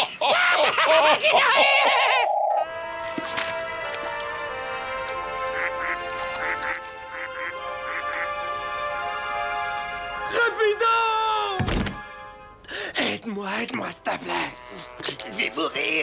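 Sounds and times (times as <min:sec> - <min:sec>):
cartoon cackling laughter: 0:00.0 - 0:02.6
gentle background music: 0:02.3 - 0:16.0.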